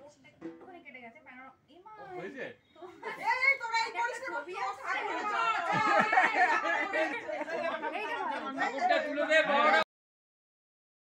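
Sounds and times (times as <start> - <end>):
overlapping chatter: 2.7 - 9.9.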